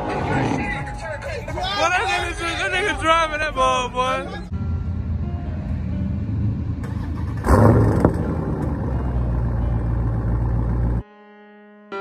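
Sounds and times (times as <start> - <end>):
voices: 0.0 - 4.5
car engine revving: 5.7 - 11.0.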